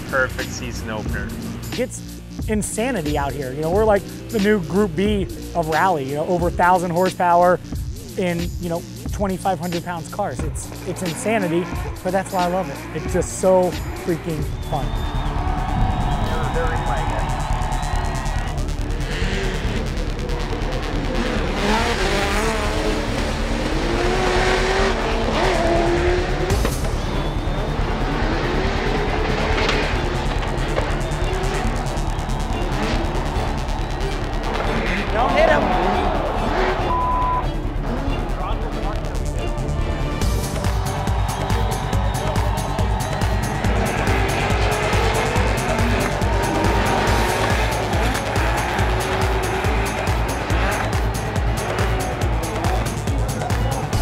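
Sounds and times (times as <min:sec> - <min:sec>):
background music with steady beat: 0:00.0 - 0:54.0
car engines revving: 0:00.0 - 0:54.0.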